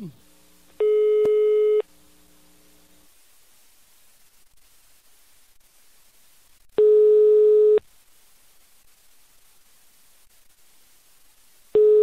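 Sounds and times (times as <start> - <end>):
telephone ringback beep: 0.8 - 1.8, 11.8 - 12.0.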